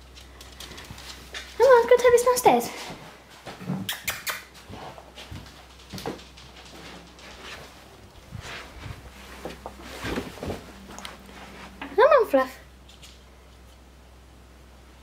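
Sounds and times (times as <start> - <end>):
footsteps on stairs: 4.6 - 11.8.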